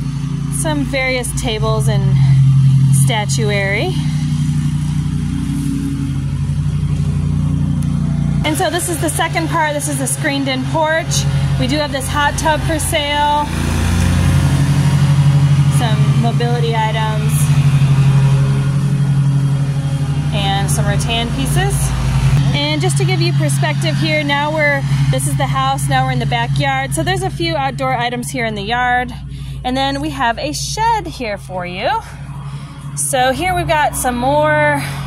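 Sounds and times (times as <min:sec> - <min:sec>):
engine running with low hum: 0:00.0 - 0:35.0.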